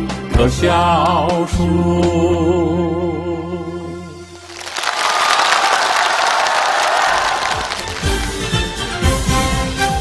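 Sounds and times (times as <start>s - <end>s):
audience applauding: 4.4s - 8.8s.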